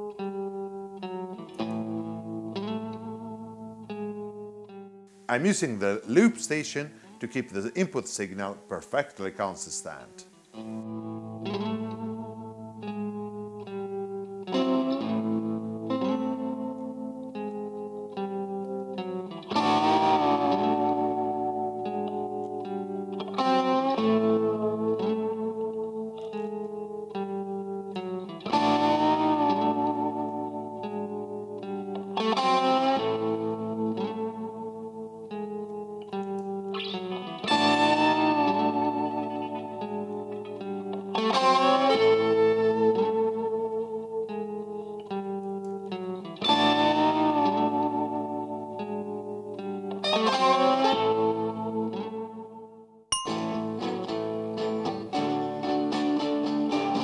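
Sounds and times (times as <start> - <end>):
electric guitar chords and picked notes: 0.0 - 57.0.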